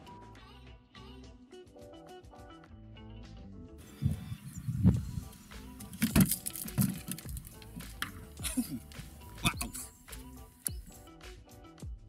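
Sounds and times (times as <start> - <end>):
low thumps: 3.8 - 10.2
closing music: 3.8 - 11.3.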